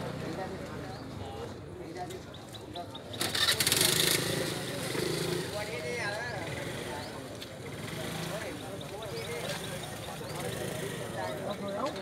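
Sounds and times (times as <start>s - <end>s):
background voices talking: 0.0s - 12.0s.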